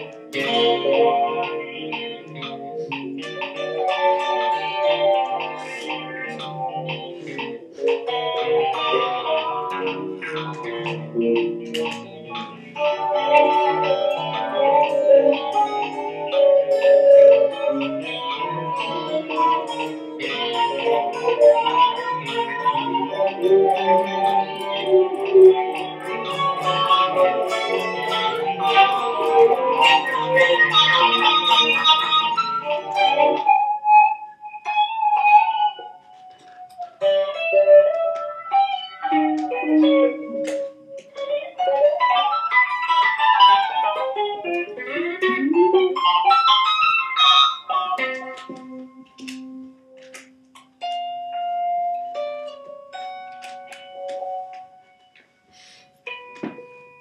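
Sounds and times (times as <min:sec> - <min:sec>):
electric guitar with effects: 0:00.0 - 0:57.0.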